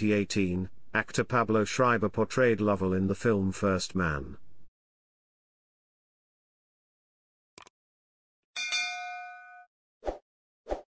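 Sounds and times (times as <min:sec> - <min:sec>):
notification bell ding: 0:08.6 - 0:09.7.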